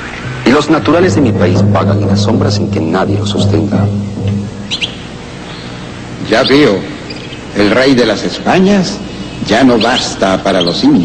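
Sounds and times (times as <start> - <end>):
low music drone: 0.0 - 6.3
songbird chirping: 0.0 - 8.4.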